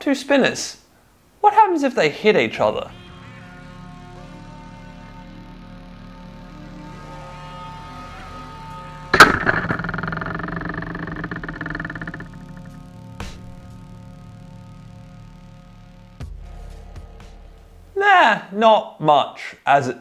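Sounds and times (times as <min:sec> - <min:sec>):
background music: 0:02.6 - 0:18.1
small knock: 0:09.2 - 0:13.5
robots colliding: 0:09.2 - 0:13.7
whirring and clattering: 0:09.2 - 0:13.7.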